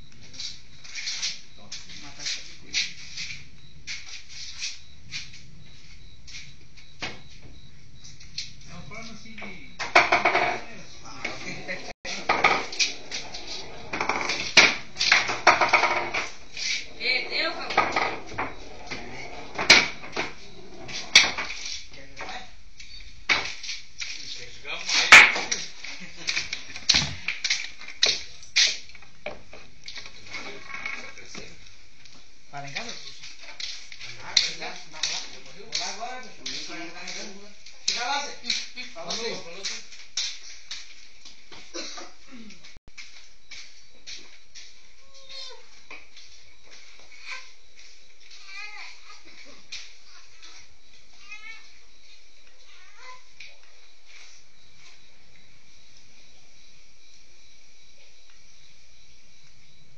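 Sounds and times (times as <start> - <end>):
indistinct voices: 8.6 - 21.2
hard objects knocking and clattering: 9.8 - 10.6, 12.2 - 12.9, 13.9 - 16.4.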